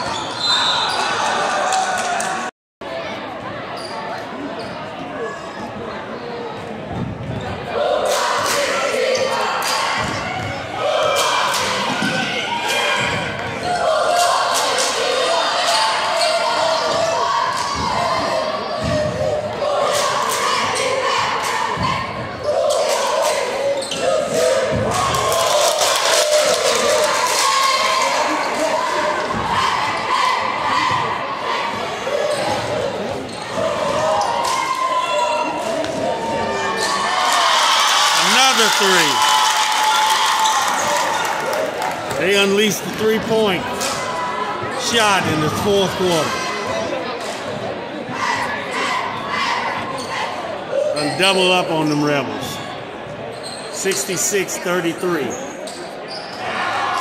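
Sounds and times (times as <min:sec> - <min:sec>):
crowd voices echoing: 0:00.0 - 0:57.0.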